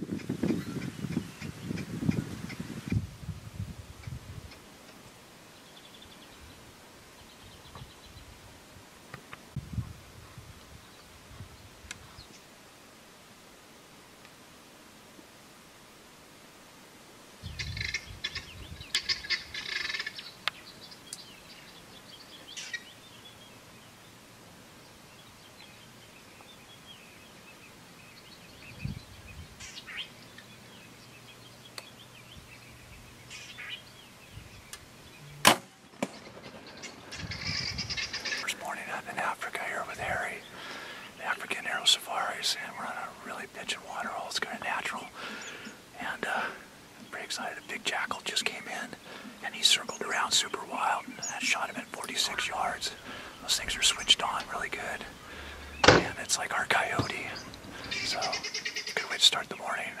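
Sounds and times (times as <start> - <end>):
bird calls: 0.0 - 2.6, 17.4 - 24.2, 24.8 - 60.0
sharp crack of bow shot: 35.4 - 36.2
whispered talk: 38.4 - 40.4, 41.2 - 45.1, 47.1 - 55.1, 56.0 - 58.4, 59.0 - 60.0.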